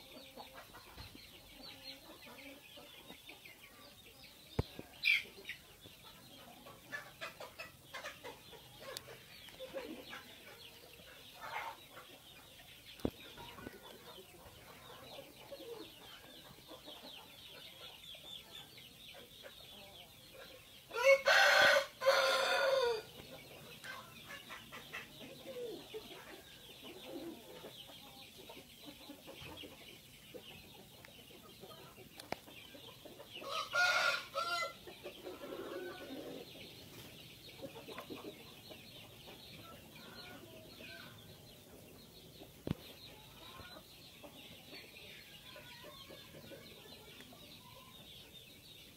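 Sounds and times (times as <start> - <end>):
rooster crowing: 21.0 - 23.1, 33.4 - 34.8.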